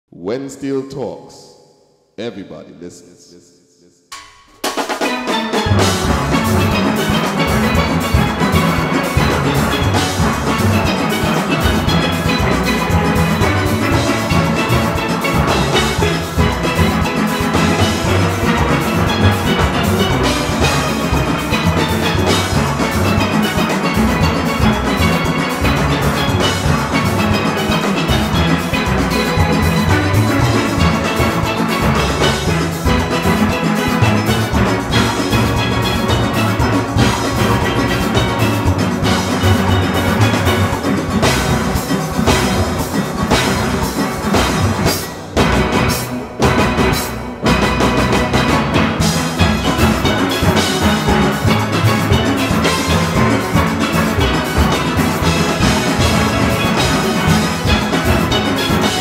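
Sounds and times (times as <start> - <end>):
bass and drums: 4.1 - 59.0
steel pans playing fast: 4.1 - 59.0.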